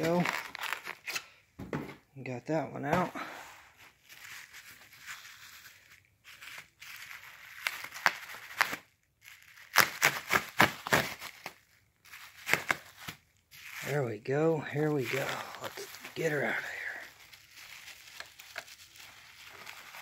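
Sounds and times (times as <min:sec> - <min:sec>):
bubble wrap and plastic crinkling: 0:00.0 - 0:01.2, 0:02.6 - 0:20.0
sharp crackles: 0:13.6 - 0:20.0.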